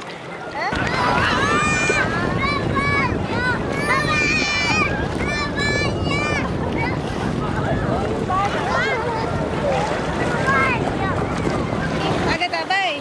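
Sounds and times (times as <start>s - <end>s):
shallow sea water washing: 0.0s - 13.0s
children calling and laughing: 0.1s - 13.0s
wind buffeting microphone: 0.7s - 13.0s.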